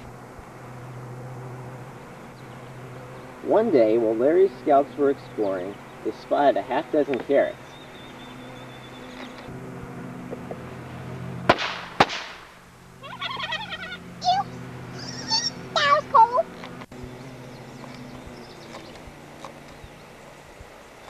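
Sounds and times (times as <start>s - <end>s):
steady low hum: 0.0s - 21.0s
sharp bangs: 10.3s - 12.7s
cartoon character giggling: 13.0s - 14.1s, 14.9s - 15.6s
high-pitched cartoon voices: 13.0s - 16.5s.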